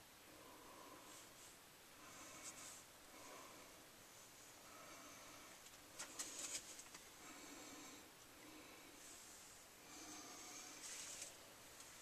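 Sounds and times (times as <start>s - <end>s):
faint breathing near microphone: 0.2s - 12.0s
brief rustle: 6.0s - 7.1s.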